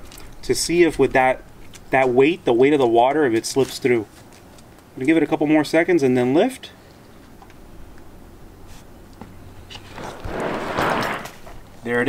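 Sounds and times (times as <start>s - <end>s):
cooler rustling and shifting: 9.6s - 12.0s.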